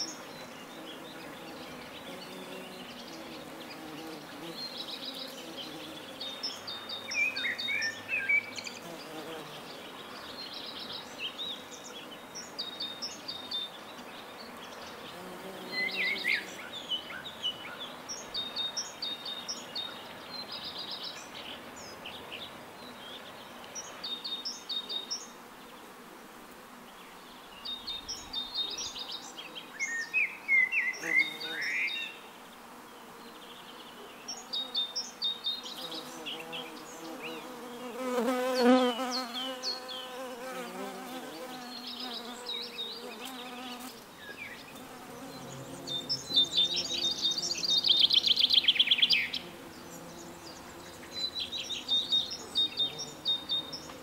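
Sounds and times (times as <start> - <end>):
bee buzzing in flight: 0.0 - 7.7, 8.7 - 10.0, 15.0 - 16.7, 34.4 - 54.0
small birds chirping: 0.0 - 25.9, 26.9 - 54.0.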